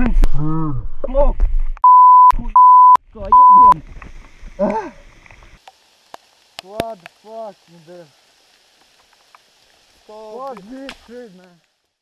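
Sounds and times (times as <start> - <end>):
faint background hiss: 3.2 - 12.0
small clicks: 5.2 - 7.2
man speaking: 6.6 - 8.2, 10.0 - 11.6.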